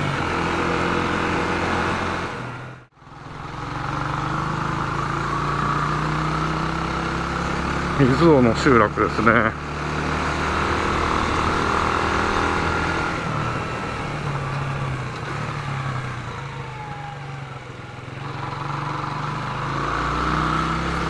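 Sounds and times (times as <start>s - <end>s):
motorcycle engine running: 0.0s - 21.0s
road and wind noise: 0.0s - 21.0s.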